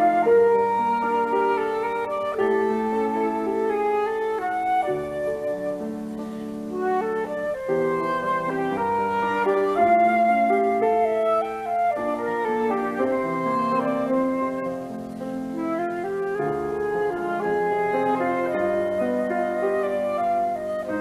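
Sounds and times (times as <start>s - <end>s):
accompanying instrument: 0.0s - 21.0s
flute melody: 0.0s - 21.0s.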